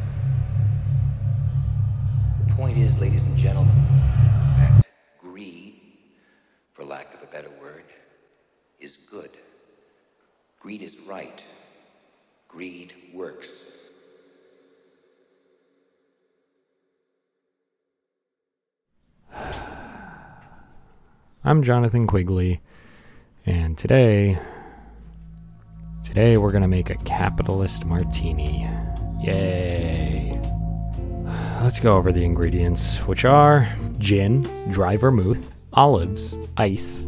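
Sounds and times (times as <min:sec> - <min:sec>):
deep droning music bed: 0:00.0 - 0:04.8, 0:23.6 - 0:37.0
man sighing: 0:19.3 - 0:21.1, 0:24.2 - 0:25.3, 0:31.2 - 0:31.6.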